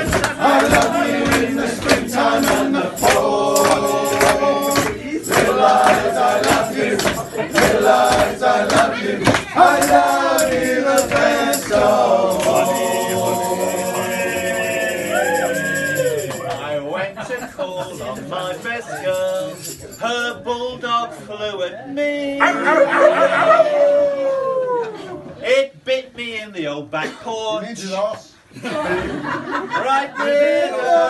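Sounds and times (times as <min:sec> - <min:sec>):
men's group singing: 0:00.0 - 0:15.6, 0:30.0 - 0:31.0
frame drums beating: 0:00.0 - 0:15.9.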